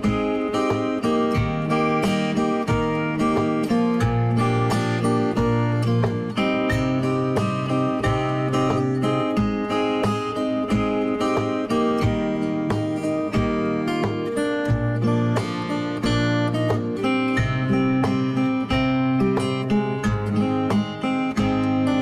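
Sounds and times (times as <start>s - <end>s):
acoustic guitar music: 0.0s - 22.0s.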